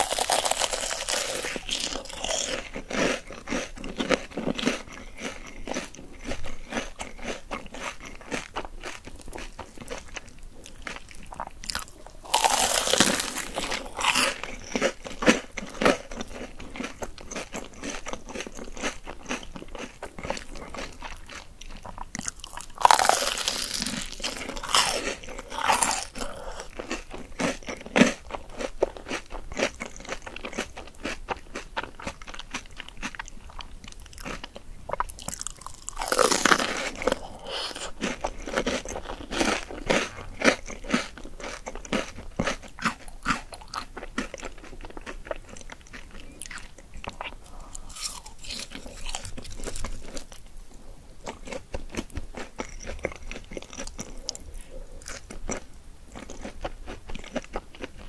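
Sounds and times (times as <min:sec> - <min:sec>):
crunching and chewing fried food: 0:00.0 - 0:58.0.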